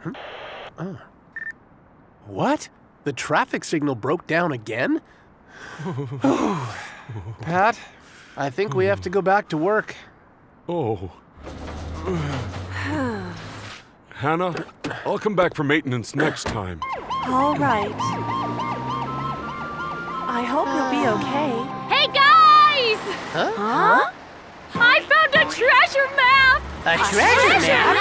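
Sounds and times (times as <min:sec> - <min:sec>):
radio static hiss: 0:00.0 - 0:00.8.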